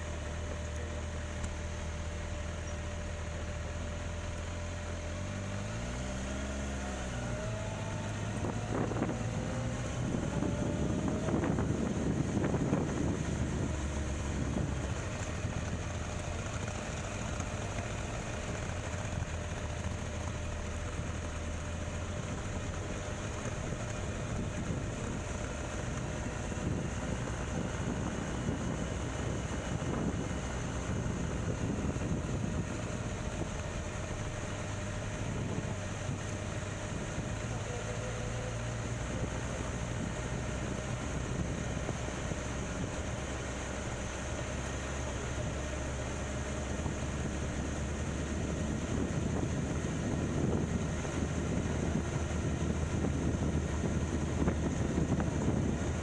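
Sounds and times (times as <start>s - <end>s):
motorcycle engine running: 0.0s - 56.0s
wind noise on microphone: 6.8s - 16.8s, 23.7s - 56.0s.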